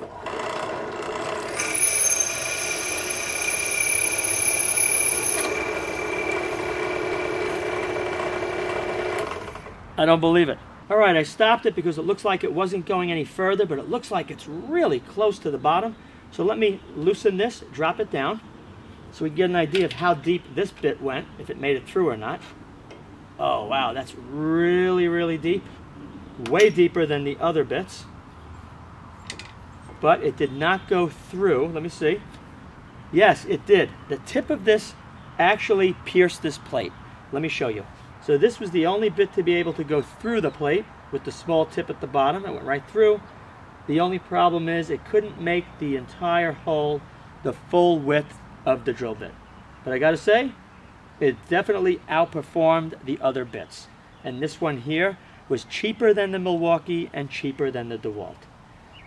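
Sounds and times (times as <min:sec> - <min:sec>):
drill bit grinding steel: 0:00.0 - 0:09.7.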